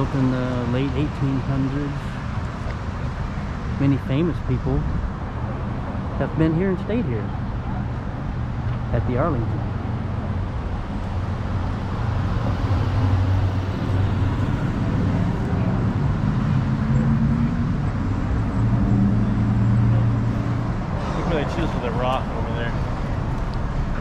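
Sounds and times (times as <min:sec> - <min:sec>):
voices: 0:00.0 - 0:02.2, 0:03.7 - 0:04.9, 0:06.0 - 0:09.7, 0:14.6 - 0:24.0
low hum of car engines: 0:00.0 - 0:24.0
vehicle passing close by: 0:09.6 - 0:23.9.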